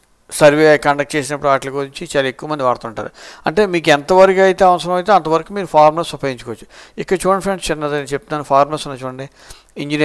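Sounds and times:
man narrating: 0.3 - 10.0.

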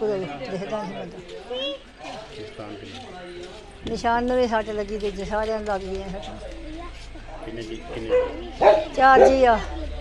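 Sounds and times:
dog barking: 8.0 - 9.5.

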